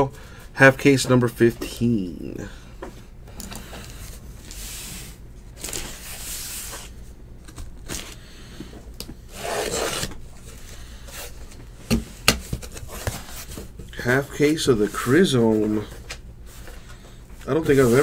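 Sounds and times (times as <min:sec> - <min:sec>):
cardboard scraping: 0:09.3 - 0:10.5, 0:17.5 - 0:18.0.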